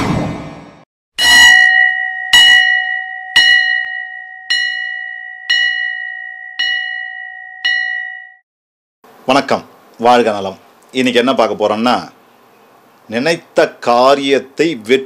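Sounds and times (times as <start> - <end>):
bell ringing: 1.2 - 8.4.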